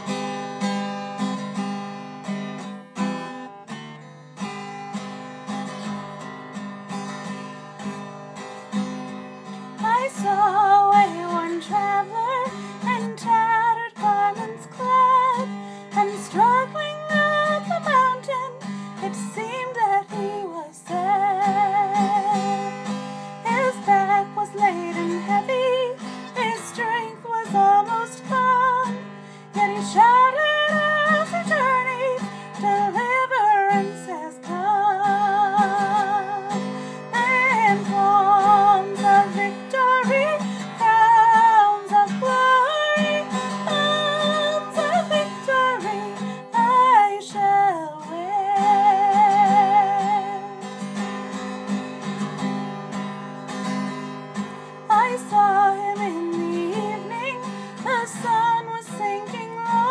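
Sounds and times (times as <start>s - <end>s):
strummed acoustic guitar: 0.0s - 59.9s
woman singing a hymn: 9.8s - 22.7s, 23.4s - 50.6s, 54.9s - 59.9s.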